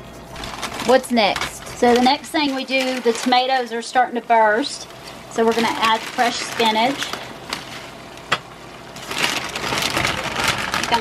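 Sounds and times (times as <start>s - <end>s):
plastic bag crinkling: 0.3s - 11.0s.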